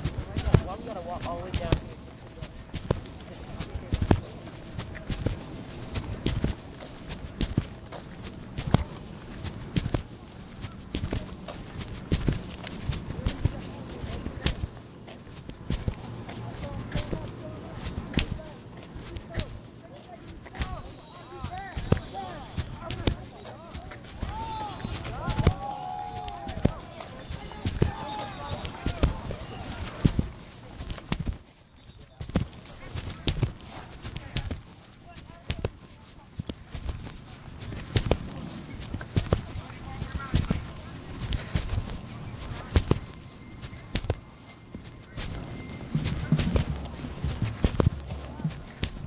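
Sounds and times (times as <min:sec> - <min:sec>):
indistinct voices: 0:00.0 - 0:36.9
microphone rubbing on clothing: 0:00.0 - 0:49.0.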